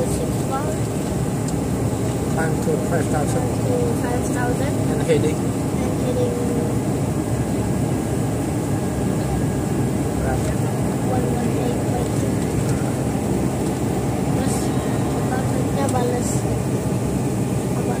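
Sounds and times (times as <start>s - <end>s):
air rushing in cabin: 0.0s - 18.0s
jet engines roaring: 0.0s - 18.0s.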